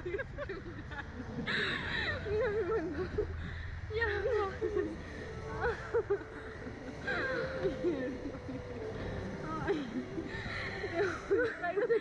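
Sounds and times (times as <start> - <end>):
laughing cry: 0.0 - 3.4
steady low rumble: 0.0 - 12.0.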